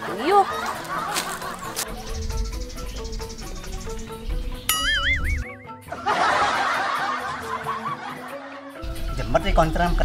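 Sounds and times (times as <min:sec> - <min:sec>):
light background music: 0:00.0 - 0:10.0
canned laughter: 0:05.8 - 0:08.8.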